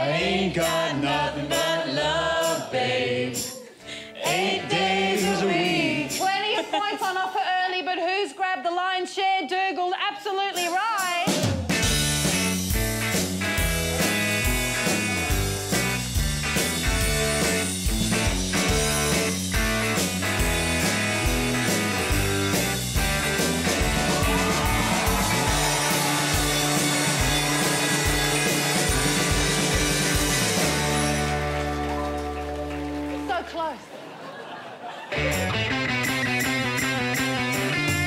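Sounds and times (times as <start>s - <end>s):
drums: 4.2s - 7.2s, 10.1s - 33.4s, 34.7s - 38.0s
bass line: 11.8s - 33.3s, 35.2s - 38.0s
electric guitar: 11.8s - 33.3s, 35.1s - 38.0s.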